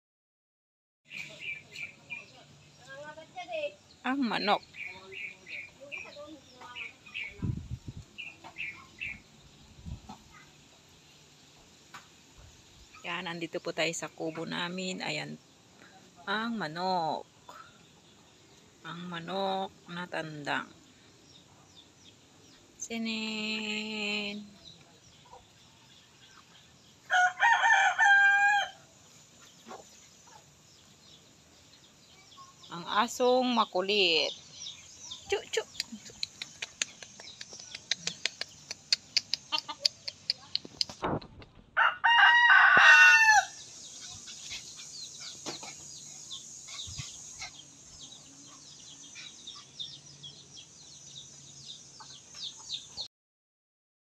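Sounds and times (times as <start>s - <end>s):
small birds chirping: 1.1s - 41.6s, 43.3s - 53.1s
rooster crowing: 27.1s - 28.9s, 41.8s - 43.6s.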